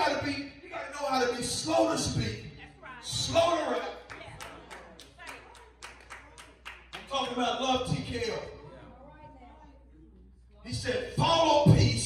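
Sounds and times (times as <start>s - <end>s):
hands clapping: 4.0s - 7.5s.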